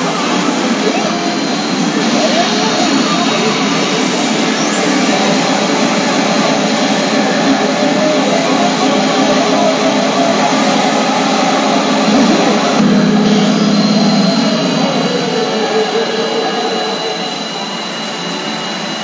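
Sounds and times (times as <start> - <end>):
pachinko parlour roar: 0.0 - 17.2.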